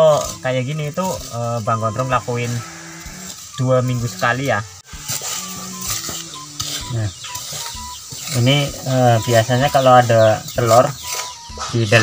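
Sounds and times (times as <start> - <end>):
machete scraping into sandy soil: 0.0 - 11.8.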